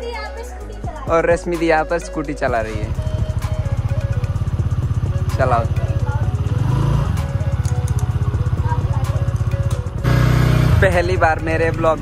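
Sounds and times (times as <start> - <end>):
small motorcycle engine revving: 3.2 - 9.4, 10.0 - 11.2.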